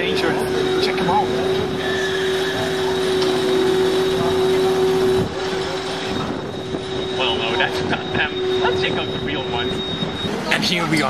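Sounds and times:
steady mechanical hum: 0.0s - 11.0s
street noise: 0.0s - 11.0s.

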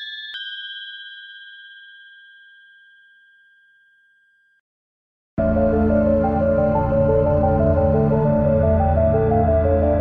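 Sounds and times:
bell-like chime ringing: 0.0s - 4.6s.

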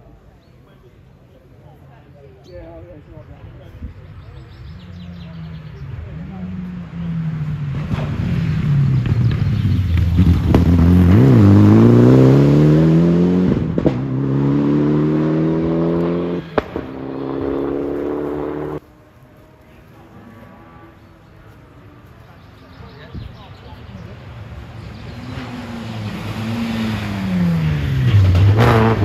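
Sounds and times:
rally car engine accelerating: 4.9s - 18.8s, 24.6s - 29.0s.

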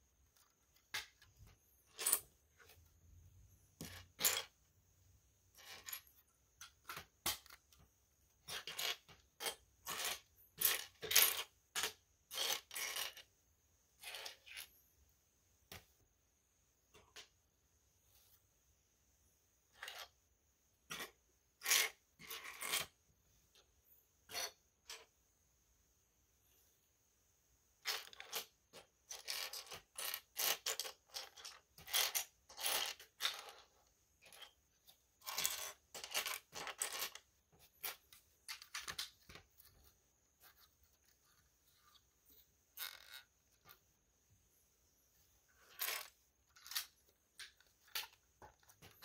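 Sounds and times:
plastic pieces clattering on wood: 35.2s - 39.5s.

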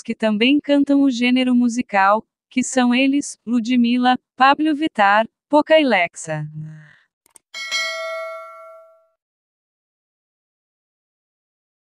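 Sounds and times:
notification bell chime: 7.6s - 9.1s.

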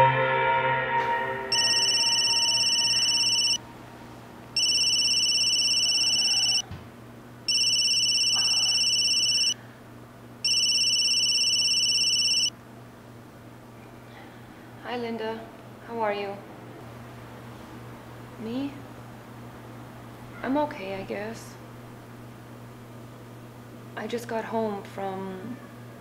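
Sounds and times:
mobile phone ringtone trilling: 1.5s - 3.6s, 4.6s - 6.6s, 7.5s - 9.6s, 10.4s - 12.5s.

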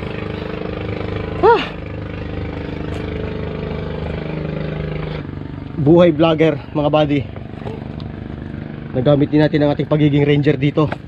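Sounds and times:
engine hum: 0.0s - 11.0s.

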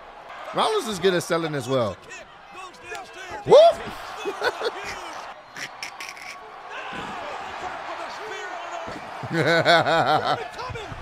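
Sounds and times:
man laughing heartily: 9.2s - 10.9s.

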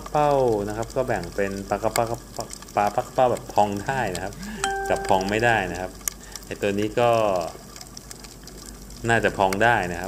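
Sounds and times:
faint crackling background noise: 0.0s - 10.0s.

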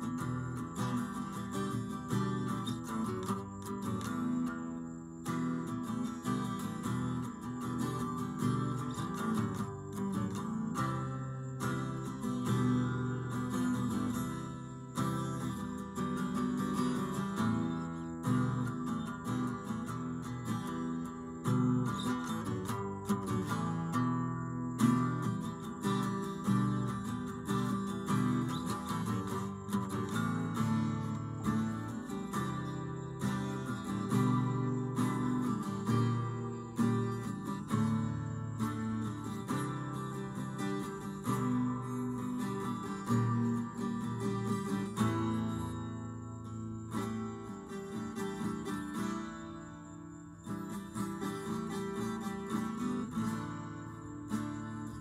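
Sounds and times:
acoustic guitar strummed and picked: 0.0s - 55.0s.

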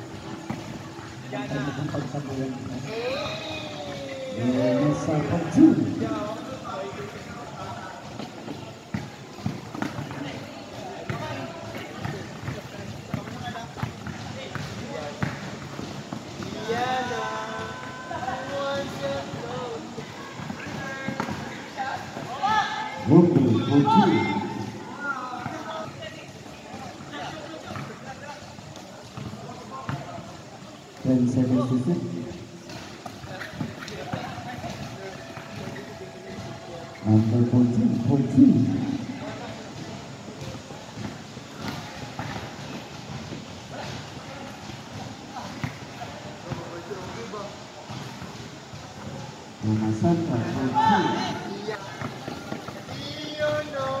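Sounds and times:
people shouting: 2.8s - 6.3s, 16.4s - 25.8s
basketball bouncing on court: 7.1s - 16.7s, 25.4s - 30.4s.

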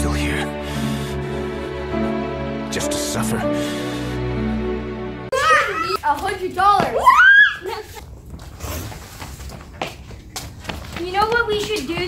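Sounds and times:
boy talking: 5.4s - 7.0s.

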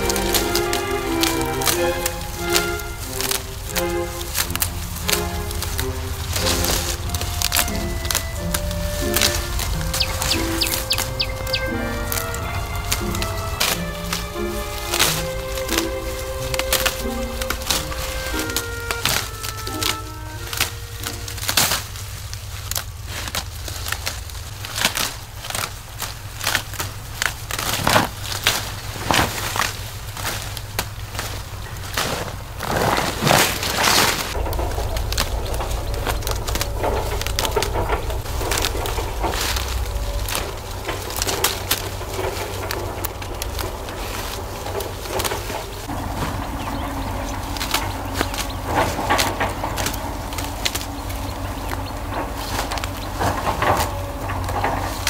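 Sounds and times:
leaves rustling: 0.0s - 55.0s
low rumble: 0.0s - 55.0s
tea shoots snapping: 0.0s - 55.0s.

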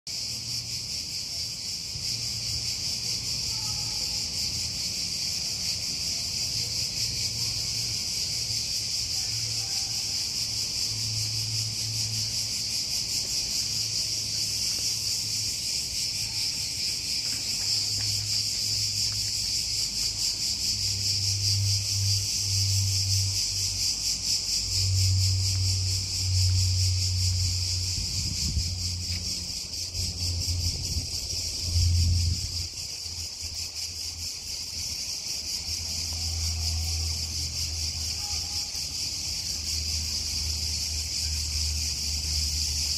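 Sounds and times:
high-pitched insect chorus: 0.1s - 42.9s.

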